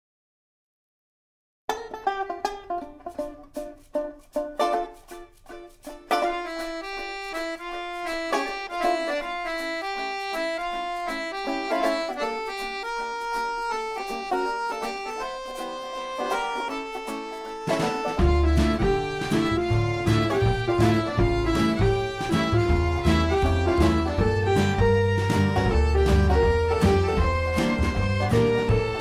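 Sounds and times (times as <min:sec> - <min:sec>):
picked banjo: 0:01.7 - 0:29.0
plucked strings: 0:01.7 - 0:29.0
accordion melody: 0:02.0 - 0:29.0.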